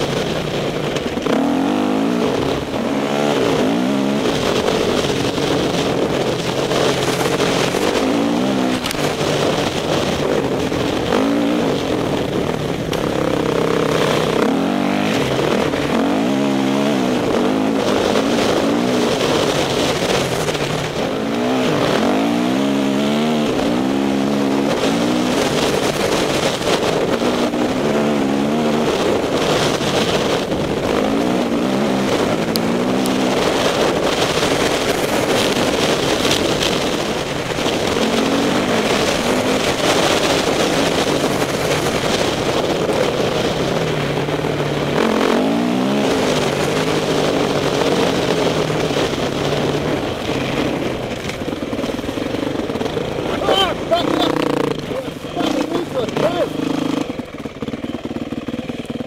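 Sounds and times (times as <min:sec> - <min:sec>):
wind rush: 0:00.0 - 0:58.4
dirt bike engine revving: 0:00.0 - 0:59.0.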